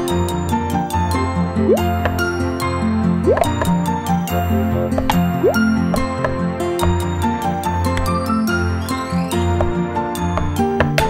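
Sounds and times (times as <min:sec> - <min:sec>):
cartoon music with bouncing bass: 0:00.0 - 0:11.0.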